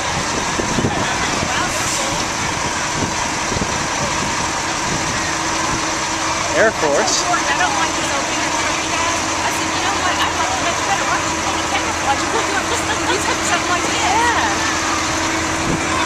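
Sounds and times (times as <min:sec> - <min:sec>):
crowd chatter: 0:00.0 - 0:16.0
diesel truck engine running: 0:00.0 - 0:16.0.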